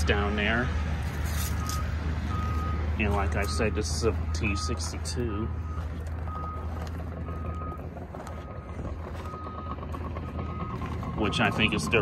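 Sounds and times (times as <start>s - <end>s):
engine rumbling: 0.0s - 12.0s
reversing alarm beeping: 1.5s - 12.0s.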